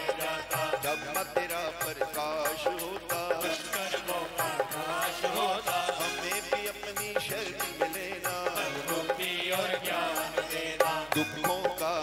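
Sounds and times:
men singing a hymn: 0:00.0 - 0:12.0.

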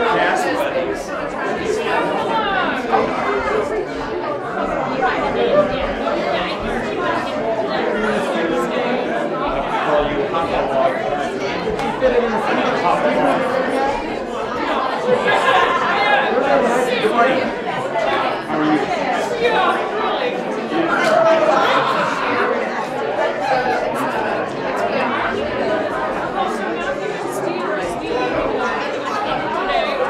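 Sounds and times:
hubbub of overlapping conversation: 0:00.0 - 0:30.0.

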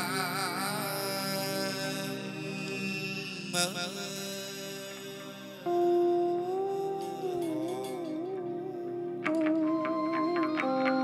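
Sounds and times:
ritual music with held notes: 0:00.0 - 0:11.0.

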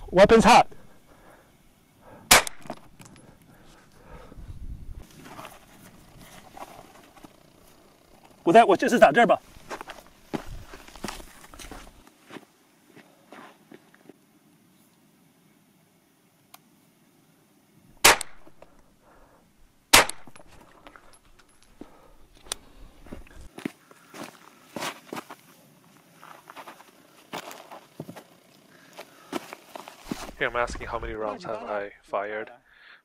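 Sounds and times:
gunshots echoing: 0:02.3 - 0:02.8, 0:18.0 - 0:18.6, 0:19.9 - 0:20.4.

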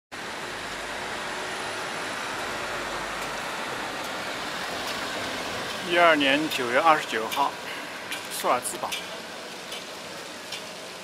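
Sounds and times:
traffic hiss: 0:00.2 - 0:11.0.

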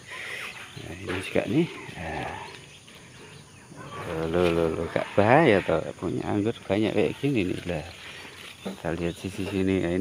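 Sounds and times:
faint animal call: 0:01.6 - 0:06.2.

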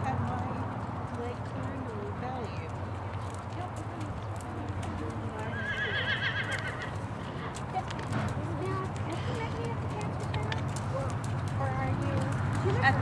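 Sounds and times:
horse whinnying: 0:05.5 - 0:07.5.

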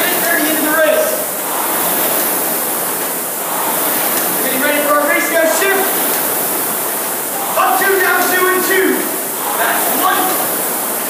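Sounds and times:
rowing machine fan whoosh: 0:00.0 - 0:11.0.

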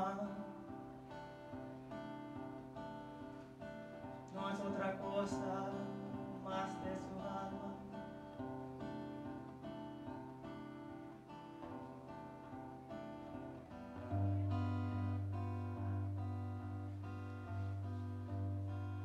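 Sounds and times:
acoustic guitar playing: 0:00.0 - 0:19.0.

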